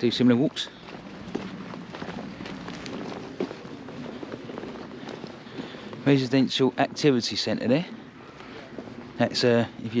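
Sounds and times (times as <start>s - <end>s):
faint outdoor background noise: 0.0s - 10.0s
footsteps on wet tarmac: 0.0s - 10.0s.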